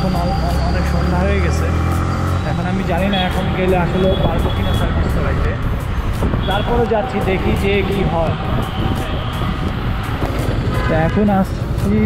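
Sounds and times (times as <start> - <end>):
street traffic: 0.0 - 12.0
wind rumbling on microphone: 4.2 - 11.0.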